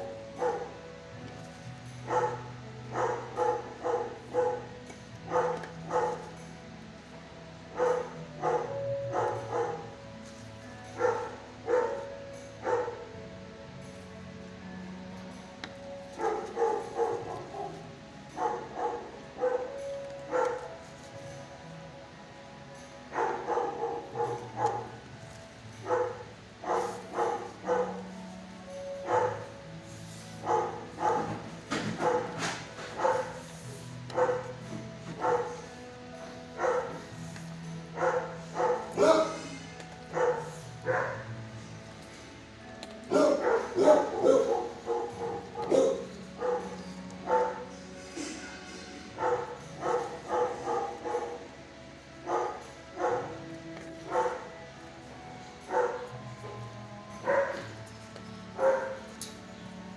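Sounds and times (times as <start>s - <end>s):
dog barking: 0.4s - 0.8s, 2.1s - 4.7s, 5.3s - 6.3s, 7.7s - 9.9s, 11.0s - 13.0s, 16.2s - 17.8s, 18.4s - 20.7s, 23.1s - 25.0s, 25.8s - 28.1s, 29.0s - 29.5s, 30.4s - 33.4s, 34.1s - 34.6s, 35.2s - 35.6s, 36.6s - 37.0s, 38.0s - 41.3s, 43.1s - 48.3s, 49.2s - 51.5s, 52.2s - 53.4s, 54.1s - 54.5s, 55.7s - 56.1s, 57.2s - 57.7s, 58.6s - 59.1s.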